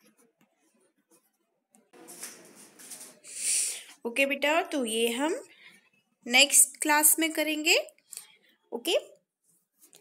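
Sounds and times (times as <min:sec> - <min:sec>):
paper rustling: 0:02.0 - 0:03.2.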